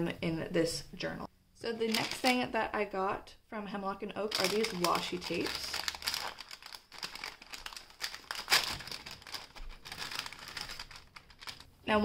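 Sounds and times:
paper packet crinkling: 1.8s - 2.4s, 4.2s - 11.7s.

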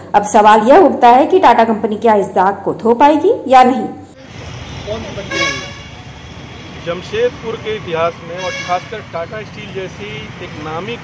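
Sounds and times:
street traffic: 0.0s - 11.0s
vehicle horn toot: 4.6s - 6.0s, 8.3s - 9.3s.

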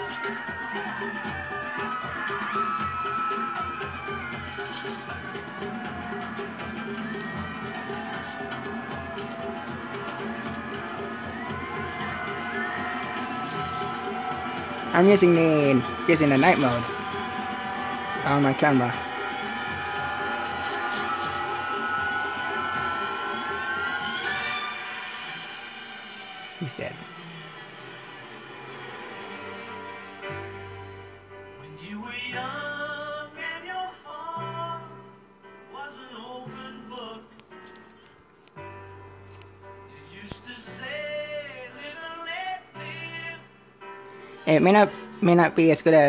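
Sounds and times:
film music with rhythmic drumming: 0.0s - 23.2s.

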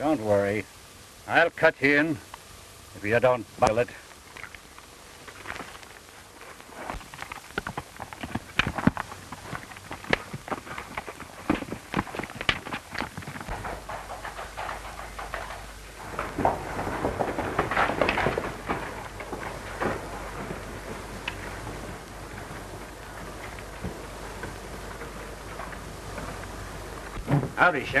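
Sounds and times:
low hum: 0.0s - 28.0s
old film soundtrack hiss: 0.0s - 28.0s
horse hooves clopping: 3.6s - 28.0s.

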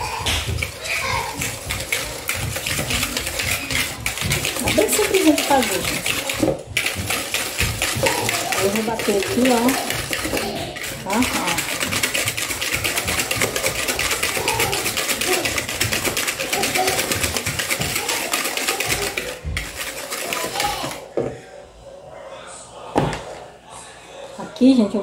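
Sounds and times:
wire whisk clattering in bowl: 0.0s - 21.0s.

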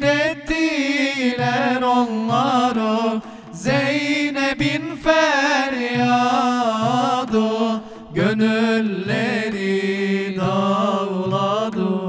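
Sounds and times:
frame drums: 0.0s - 12.0s
male group singing: 0.0s - 12.0s.

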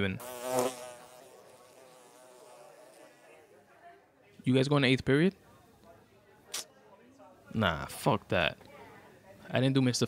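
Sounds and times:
housefly buzzing: 0.0s - 3.5s.

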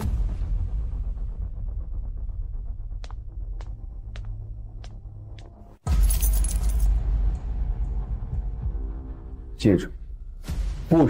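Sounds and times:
keys jingling on a ring: 5.9s - 6.9s.

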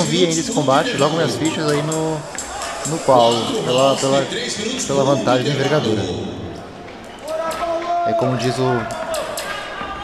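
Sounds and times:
announcer calling the bout: 0.0s - 6.5s
hall background noise: 0.0s - 10.0s.

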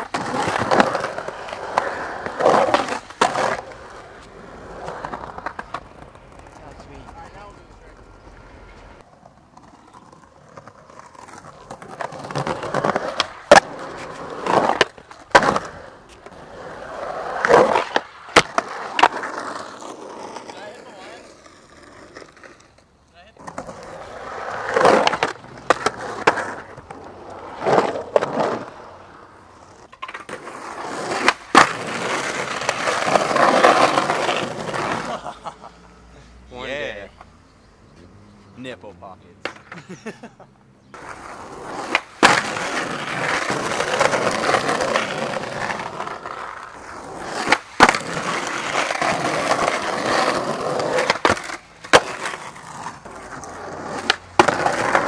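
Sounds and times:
skateboard clacking on ground: 0.0s - 28.8s, 29.5s - 35.3s, 39.4s - 39.9s, 40.9s - 55.0s
skateboard wheels rolling on concrete: 0.0s - 55.0s.

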